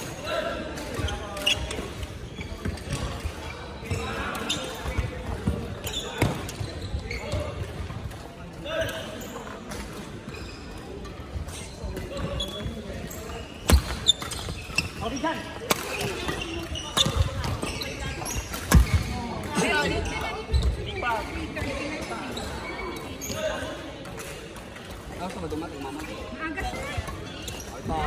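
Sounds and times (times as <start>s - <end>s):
shoes squeaking on wooden floor: 1.0s - 7.6s, 10.2s - 23.7s
rackets striking shuttlecock: 15.6s - 17.7s, 18.4s - 19.6s.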